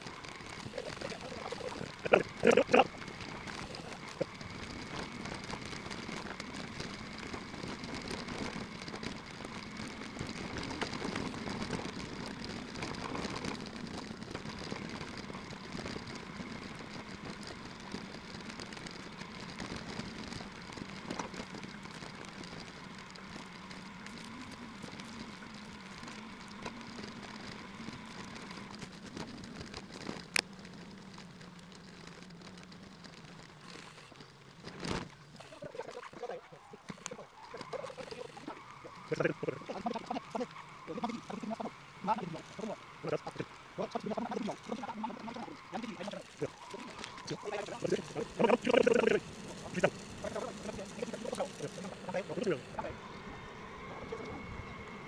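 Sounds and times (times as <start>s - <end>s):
electric bicycle riding hum: 0.0s - 55.0s.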